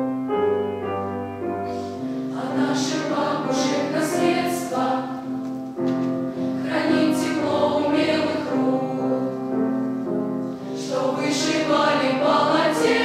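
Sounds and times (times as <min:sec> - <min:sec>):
piano accompaniment: 0:00.0 - 0:13.0
children's choir singing: 0:02.2 - 0:09.9, 0:10.6 - 0:13.0.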